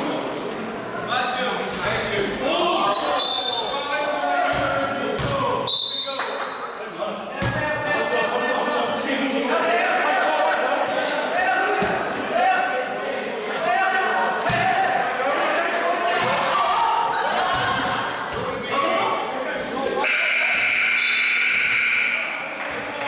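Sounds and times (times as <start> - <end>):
players and spectators voices: 0.0 - 23.0.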